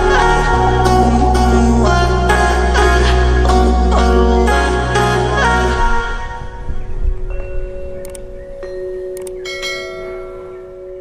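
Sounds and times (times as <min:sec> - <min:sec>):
ringing bell chime: 0:07.4 - 0:11.0.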